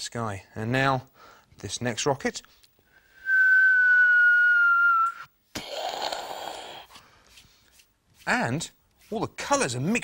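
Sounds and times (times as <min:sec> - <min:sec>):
person whistling a falling note: 0:03.2 - 0:05.3.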